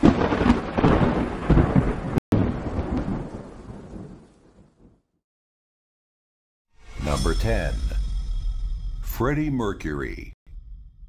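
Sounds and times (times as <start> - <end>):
rolling thunder: 0.0 - 5.0.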